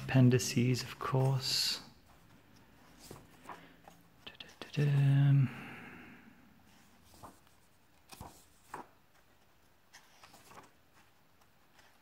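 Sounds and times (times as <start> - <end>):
book pages turning: 0.0 - 5.3, 6.7 - 12.0.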